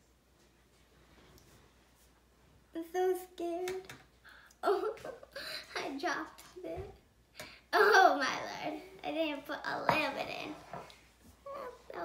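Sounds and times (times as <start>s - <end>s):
girl chattering: 11.4s - 12.0s.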